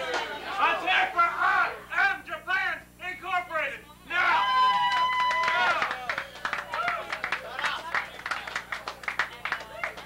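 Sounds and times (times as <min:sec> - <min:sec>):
bar crowd noise: 0:00.0 - 0:10.0.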